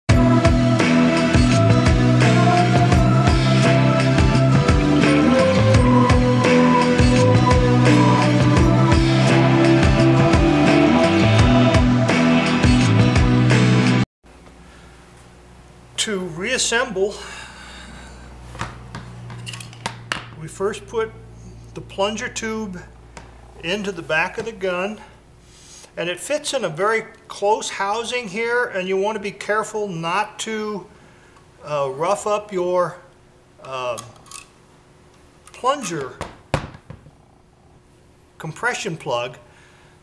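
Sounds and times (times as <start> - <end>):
low steady hum: 14.3 - 28.4
thump on workbench: 36.2 - 37.1.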